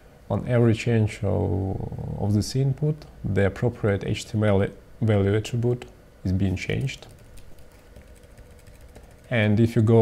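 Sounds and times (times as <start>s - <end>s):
computer keyboard typing: 6.7s - 9.6s.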